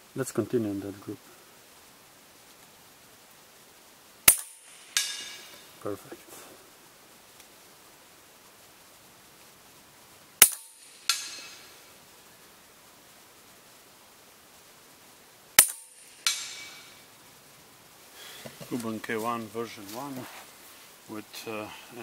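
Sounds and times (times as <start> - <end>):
air rifle shots: 10.4 - 11.6, 15.6 - 17.0.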